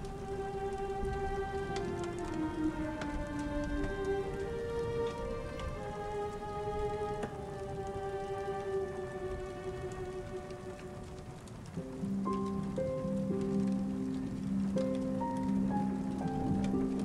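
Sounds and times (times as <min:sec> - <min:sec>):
rain falling: 0:00.0 - 0:17.0
soft instrumental music: 0:00.0 - 0:17.0.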